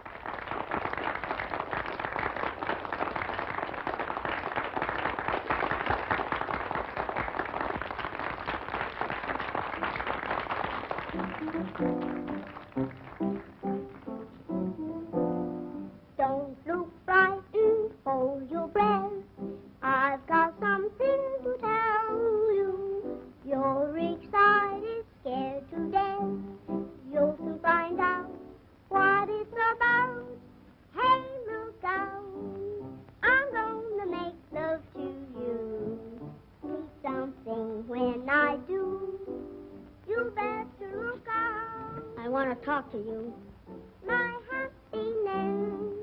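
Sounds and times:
instrumental accompaniment: 10.9s - 16.2s
woman singing with vibrato: 31.0s - 39.4s, 40.0s - 46.0s.

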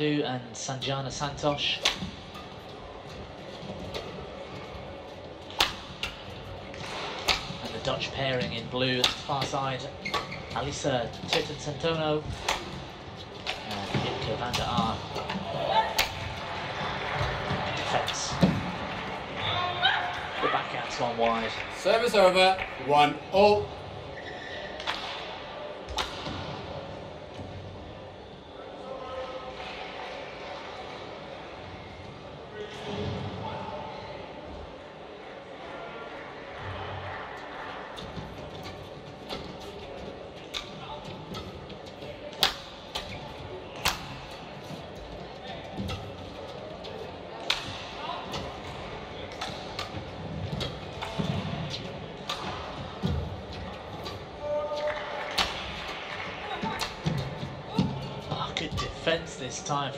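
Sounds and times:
rackets striking shuttlecock: 1.8s - 2.6s, 5.5s - 7.8s, 9.0s - 16.5s, 42.3s - 45.1s, 47.4s - 59.0s.

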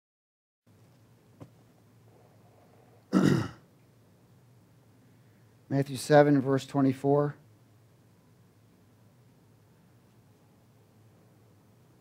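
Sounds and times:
man clearing his throat: 3.1s - 3.7s.

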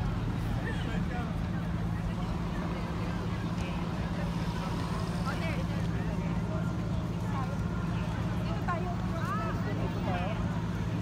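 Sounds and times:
faint voices of passers-by: 0.0s - 11.0s
low hum of traffic: 0.0s - 11.0s.

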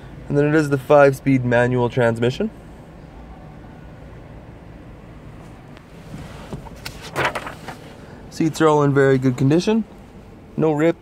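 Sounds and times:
car cabin hum: 4.8s - 10.6s.

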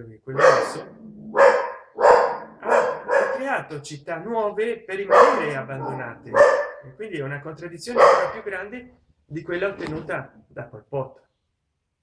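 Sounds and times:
man speaking: 0.0s - 1.0s, 2.6s - 11.2s.

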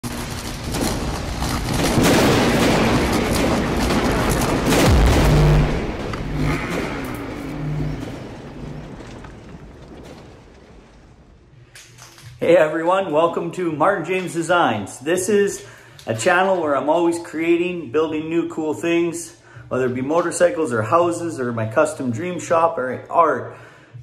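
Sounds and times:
deep boom: 0.6s - 11.6s
sharp hits: 0.6s - 11.7s
rushes of noise: 2.5s - 11.7s.

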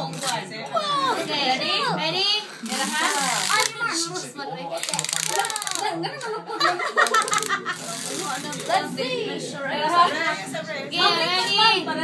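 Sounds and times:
people talking and laughing: 0.0s - 12.0s.

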